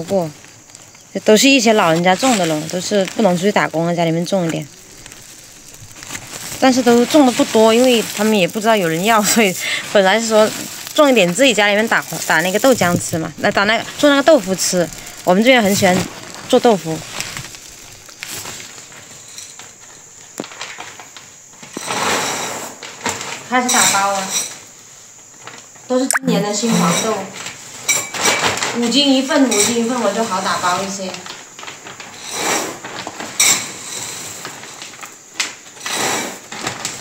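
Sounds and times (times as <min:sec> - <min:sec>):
dry beans rustling: 0:00.0 - 0:21.0.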